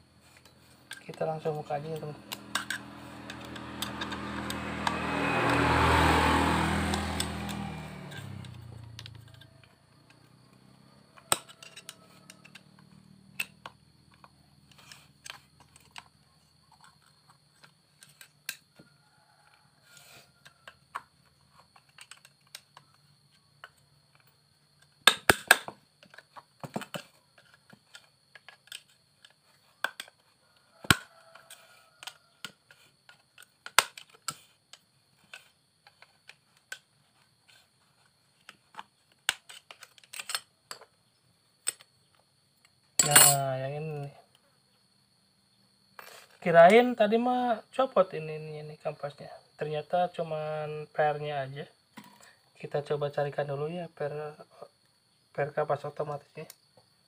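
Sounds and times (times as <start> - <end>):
sharp metal clatters: 43.0 - 43.4.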